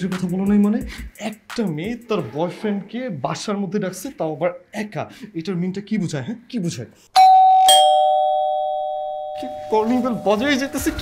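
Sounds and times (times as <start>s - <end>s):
two-note doorbell chime: 7.2s - 10.4s.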